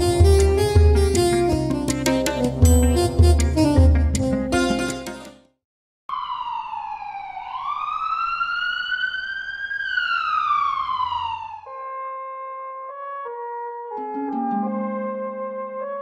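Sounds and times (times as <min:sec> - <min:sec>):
music with held notes: 0:00.0 - 0:05.5, 0:14.0 - 0:16.0
ambulance siren wailing: 0:06.1 - 0:16.0.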